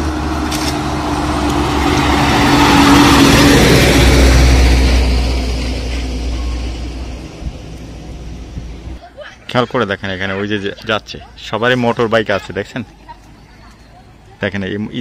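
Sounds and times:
truck driving past: 0:00.0 - 0:09.0.

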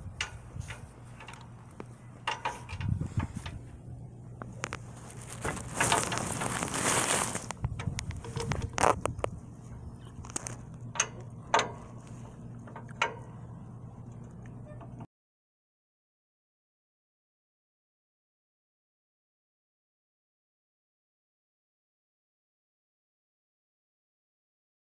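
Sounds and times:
steady low hum: 0:00.0 - 0:15.1
metal tools clanking: 0:02.2 - 0:03.6
rustling handling noise: 0:04.4 - 0:11.2.

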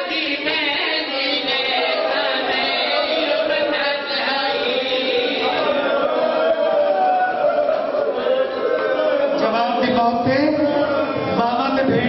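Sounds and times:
men chanting together: 0:00.0 - 0:07.0.

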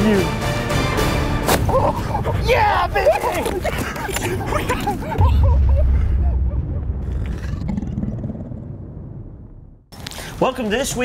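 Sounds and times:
deep low rumble: 0:04.6 - 0:09.9.

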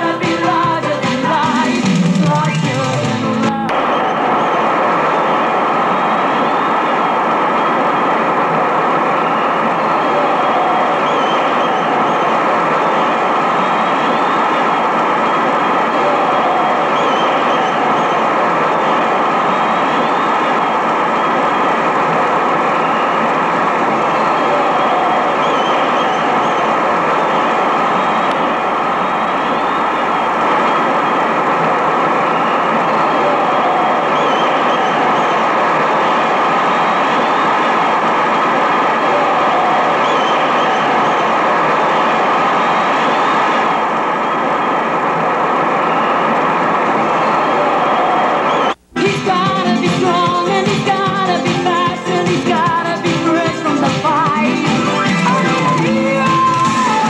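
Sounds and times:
loud steady rushing noise: 0:01.3 - 0:49.2.

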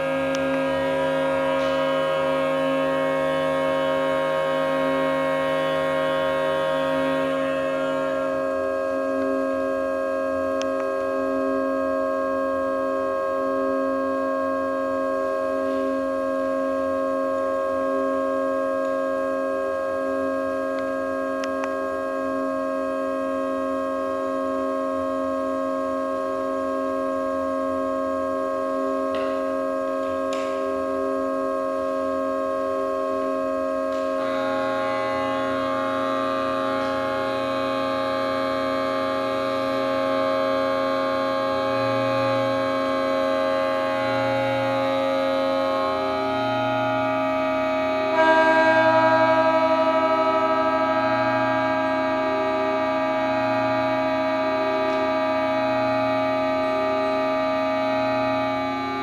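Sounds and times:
pipe organ drone chord: 0:00.0 - 0:59.0.

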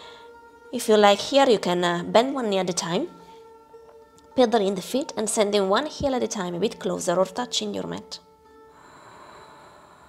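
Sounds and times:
soft breathy hiss: 0:00.0 - 0:00.7, 0:08.3 - 0:10.0
held tones background music: 0:00.0 - 0:10.0.

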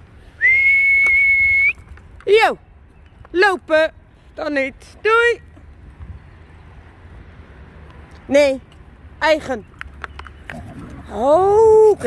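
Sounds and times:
long steady whistle: 0:00.4 - 0:01.8.

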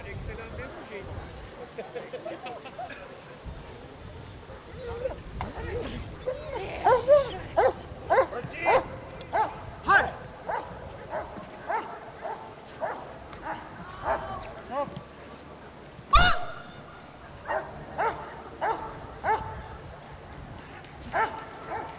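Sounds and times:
dog barking in high yips: 0:16.1 - 0:16.6, 0:17.5 - 0:19.5, 0:21.2 - 0:21.9.

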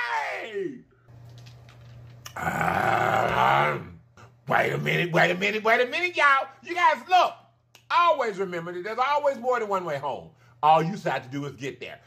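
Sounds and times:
faint steady hum: 0:00.0 - 0:12.0
man growling: 0:02.3 - 0:04.1.

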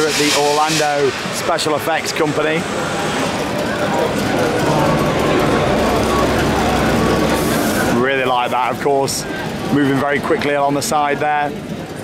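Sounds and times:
gas flame hiss: 0:00.0 - 0:03.3
crowd of voices: 0:00.0 - 0:12.0
gas flame rumble: 0:00.0 - 0:12.0.

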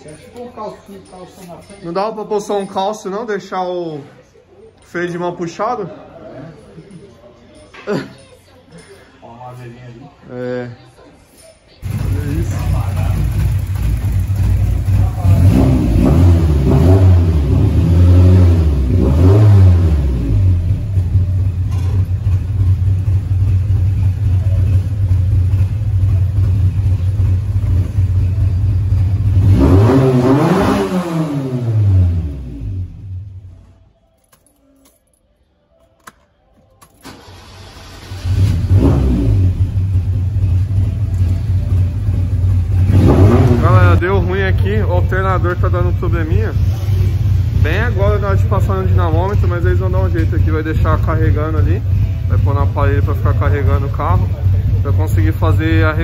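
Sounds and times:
car engine revving and idling: 0:11.8 - 0:33.5, 0:37.1 - 0:56.0.

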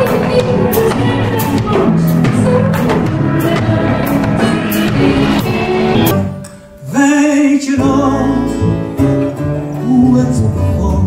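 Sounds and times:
woman singing: 0:00.0 - 0:06.2
live band with keyboard and beat: 0:00.0 - 0:06.8.

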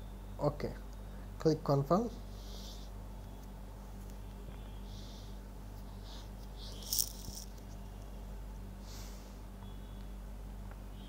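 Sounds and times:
low electrical hum: 0:00.0 - 0:11.0.

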